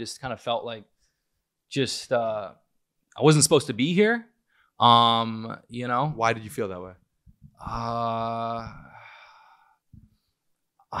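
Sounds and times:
man sighing: 7.6s - 9.8s.

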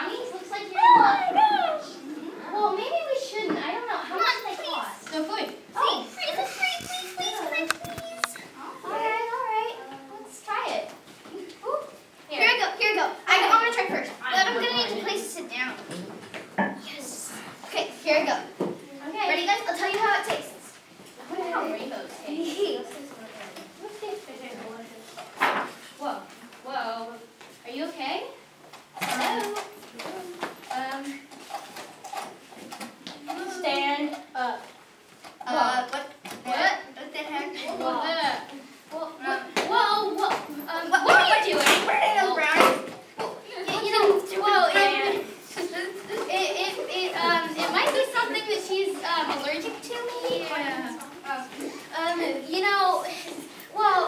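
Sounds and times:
children calling out: 0.0s - 2.7s
children talking: 0.0s - 54.0s.

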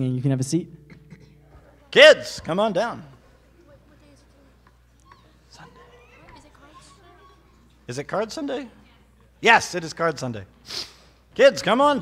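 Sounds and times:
murmur of congregation voices: 1.1s - 9.6s.

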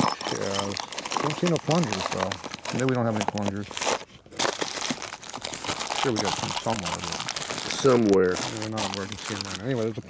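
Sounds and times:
plastic bags crinkling: 0.0s - 10.0s.

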